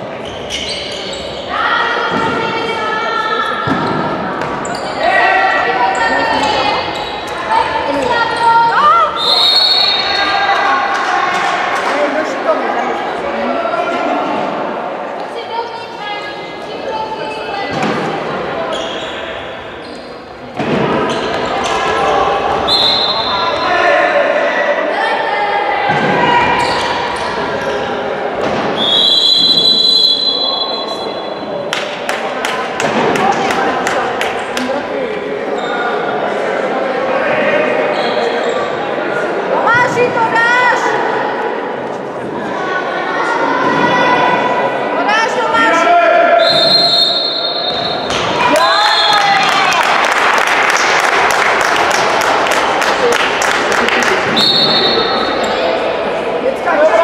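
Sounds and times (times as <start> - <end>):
voices shouting in a hall: 0.0 - 57.0
referee's whistle: 9.1 - 10.3, 22.7 - 23.7, 28.8 - 31.3, 46.4 - 48.1, 54.4 - 55.2.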